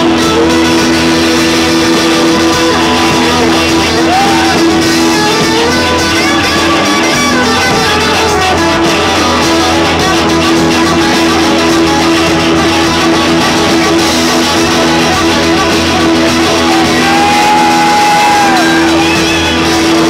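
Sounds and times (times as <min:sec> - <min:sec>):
electric guitars sustained notes: 0:00.0 - 0:20.0
rock band playing: 0:00.0 - 0:20.0.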